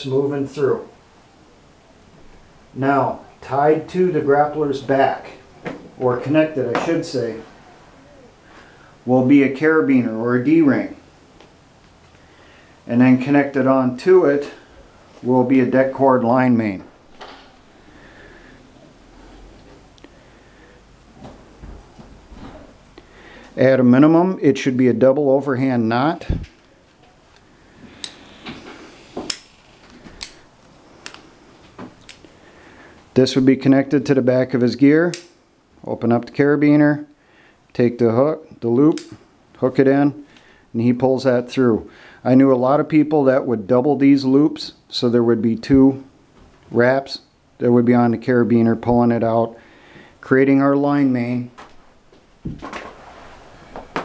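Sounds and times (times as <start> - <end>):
sharp click: 35.1 - 35.4, 38.9 - 39.2
scraping rustle: 52.6 - 54.0.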